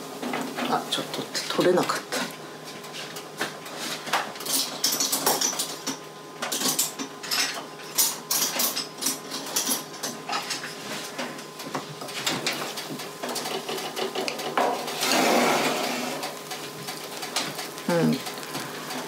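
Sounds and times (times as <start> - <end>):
oven rush of noise: 9.9 - 19.0.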